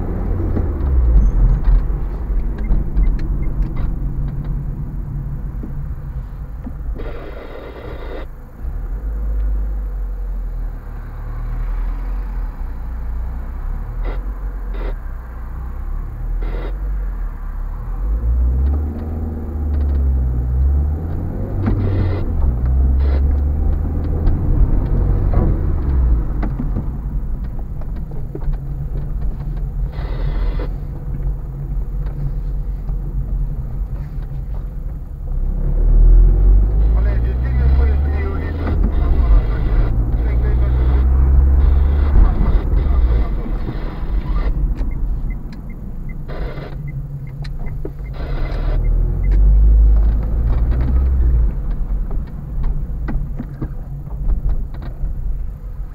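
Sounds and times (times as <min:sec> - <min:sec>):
car engine: 0:00.0 - 0:55.9
road noise inside car: 0:00.0 - 0:55.9.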